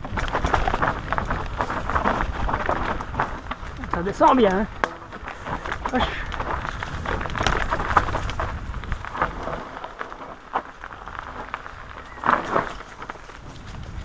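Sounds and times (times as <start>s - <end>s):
bike clicks and rattles: 0.0s - 14.0s
mountain bike tyre noise: 0.0s - 14.0s.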